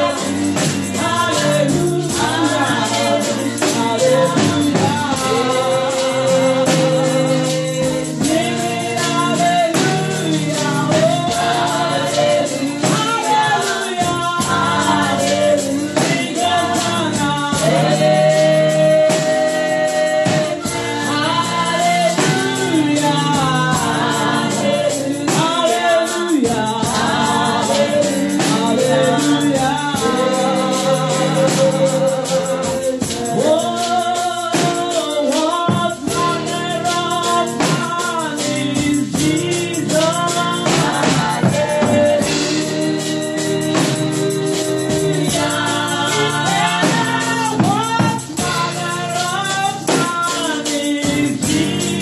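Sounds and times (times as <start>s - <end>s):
tambourine jingles: 0.0s - 52.0s
woman singing gospel song: 0.0s - 52.0s.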